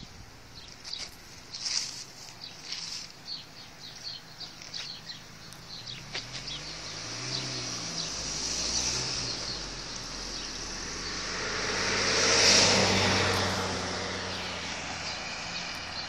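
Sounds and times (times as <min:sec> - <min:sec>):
car driving past: 0:05.1 - 0:16.0.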